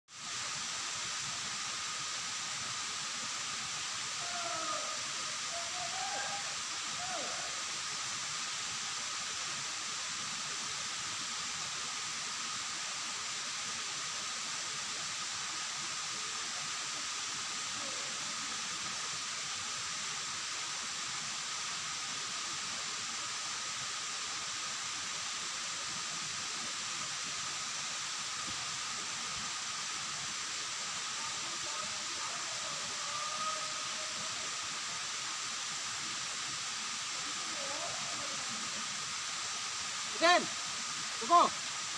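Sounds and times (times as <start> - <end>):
waterfall rushing: 0.2 - 41.9.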